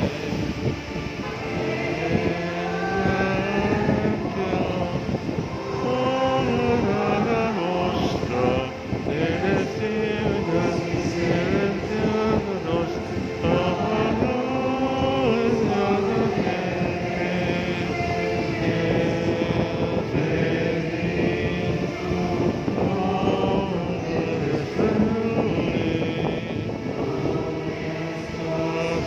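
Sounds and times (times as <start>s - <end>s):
voices singing a slow hymn: 0.0s - 29.0s.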